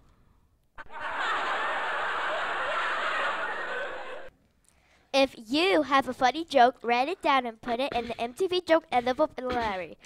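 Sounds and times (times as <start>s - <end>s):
laugh track of people laughing: 0.8s - 4.3s.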